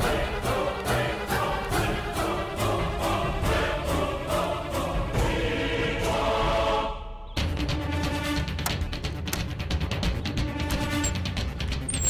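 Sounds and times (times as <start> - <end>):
dramatic score with choir: 0.0 - 11.1.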